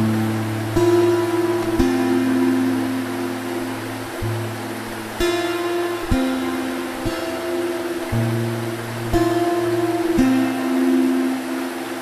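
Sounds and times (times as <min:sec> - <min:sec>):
acoustic guitar music: 0:00.0 - 0:12.0
river water flowing: 0:00.0 - 0:12.0.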